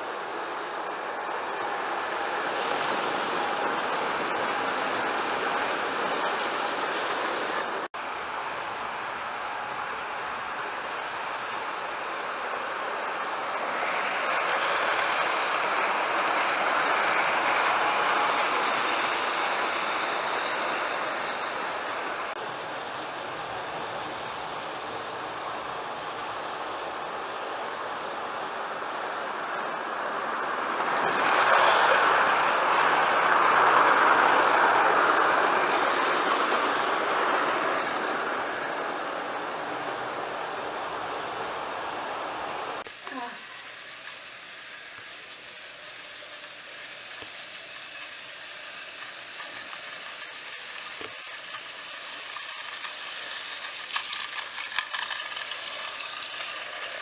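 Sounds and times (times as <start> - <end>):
model train motors whirring: 0.0 - 57.0.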